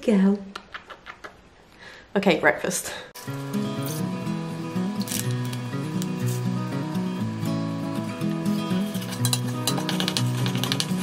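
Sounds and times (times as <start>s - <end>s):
background music: 3.2s - 11.0s
spoon scraping steel saucepan: 8.7s - 11.0s.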